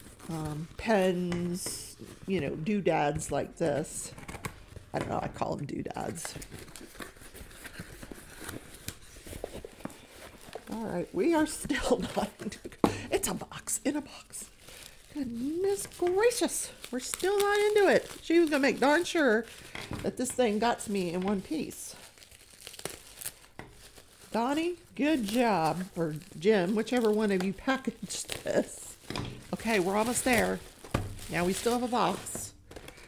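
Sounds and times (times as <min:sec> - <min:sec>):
bubble wrap crinkling: 0:00.0 - 0:05.0, 0:05.8 - 0:33.0.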